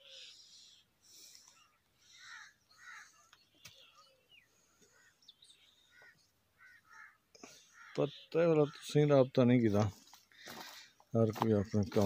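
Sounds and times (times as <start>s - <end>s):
faint bird calls: 0.0s - 9.2s.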